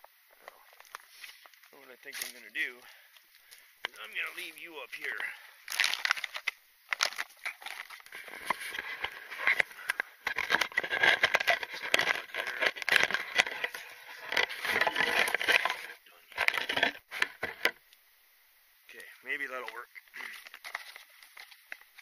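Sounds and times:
dry twigs crackling and rustling: 0.7s - 17.7s, 19.0s - 22.0s.

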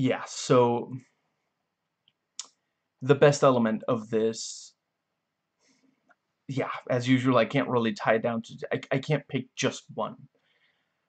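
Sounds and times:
mouth click: 2.4s - 2.6s.

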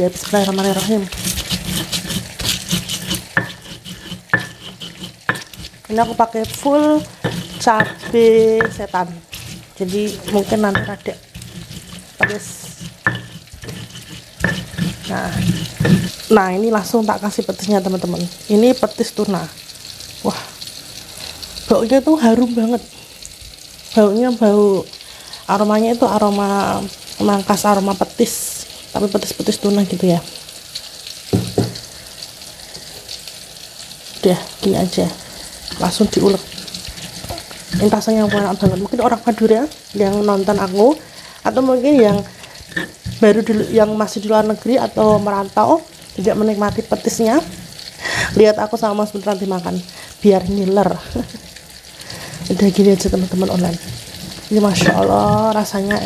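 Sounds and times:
stone pestle grinding in mortar: 0.0s - 16.2s, 35.7s - 39.1s, 41.6s - 43.9s, 44.8s - 45.5s
food sizzling in hot oil: 0.0s - 56.0s
stone-on-stone knocks: 31.3s - 31.8s.

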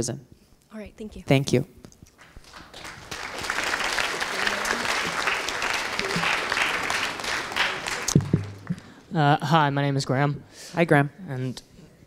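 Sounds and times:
audience clapping: 2.0s - 9.1s
low thumps: 8.1s - 9.0s.

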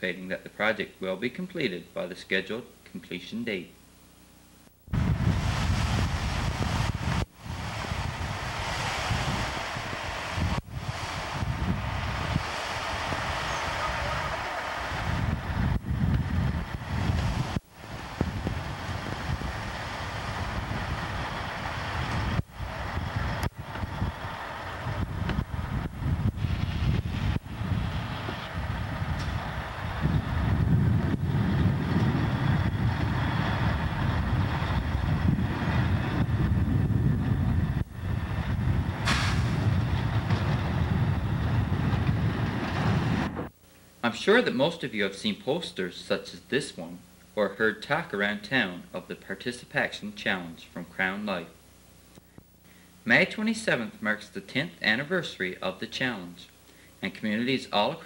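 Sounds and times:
heavy machinery engine rumble: 5.0s - 43.5s.

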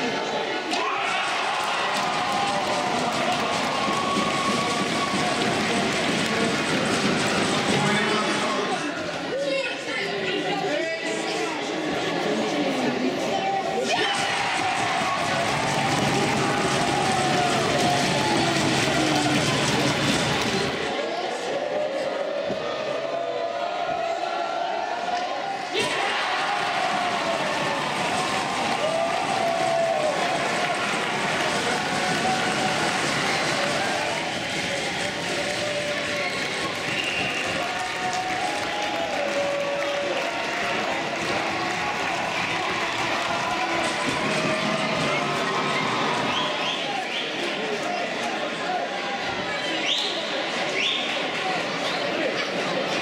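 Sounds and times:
crowd cheering and shouting: 0.0s - 53.0s.

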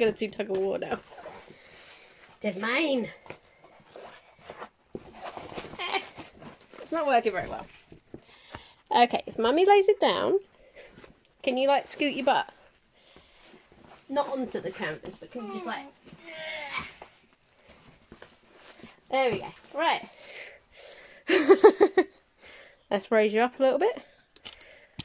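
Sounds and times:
canvas rustling: 0.0s - 8.2s, 9.2s - 20.6s
person speaking: 14.1s - 16.9s.

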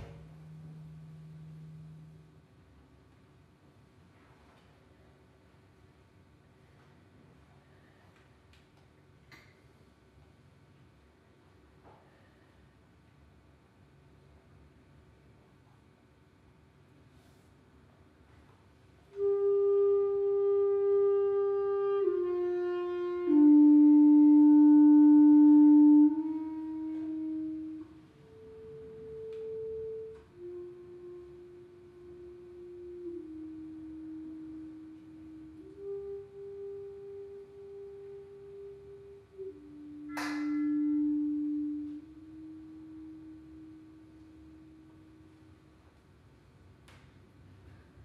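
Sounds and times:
clarinet playing held notes: 0.0s - 2.5s, 19.1s - 46.0s.

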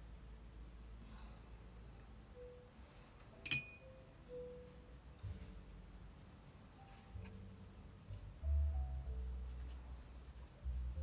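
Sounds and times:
quiet jazz music: 0.0s - 11.0s
light clink with bright ring: 3.4s - 3.8s.

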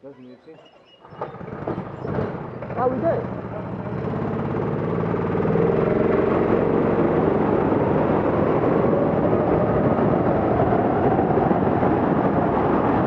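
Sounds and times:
go-kart engine revving: 1.0s - 13.0s.

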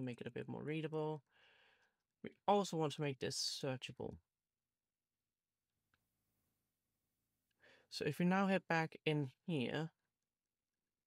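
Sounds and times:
intake of breath: 1.3s - 2.0s.

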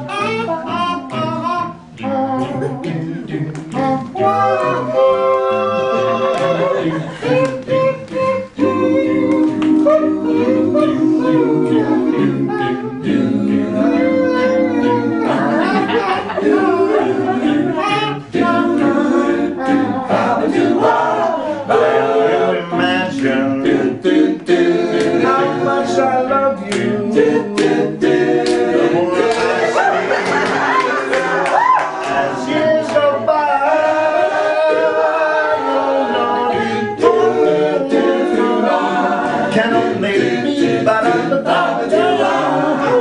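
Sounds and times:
a cappella group singing: 0.0s - 43.0s.

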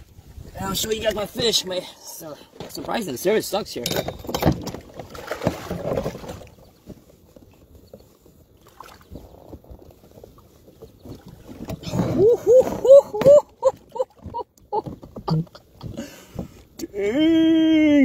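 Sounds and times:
gear rustling and knocking in kayak: 0.1s - 17.5s
man exclaiming: 16.8s - 18.0s.

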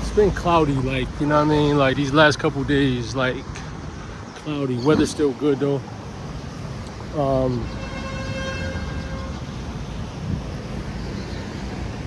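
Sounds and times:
street traffic rumble: 0.0s - 12.0s
vehicle horn: 7.5s - 9.7s.

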